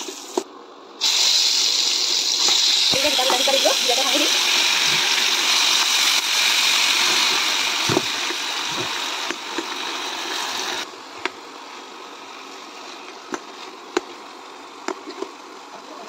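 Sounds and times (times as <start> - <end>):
vegetables sizzling in hot oil: 1.0 - 16.0.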